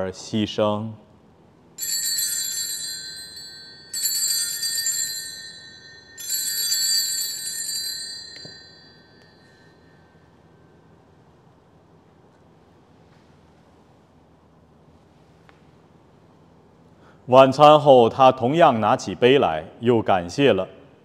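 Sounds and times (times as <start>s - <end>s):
altar bells ringing: 1.8s - 10.1s.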